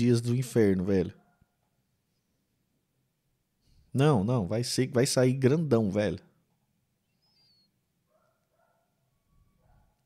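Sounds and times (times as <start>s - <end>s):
faint high chirp: 7.0s - 9.8s.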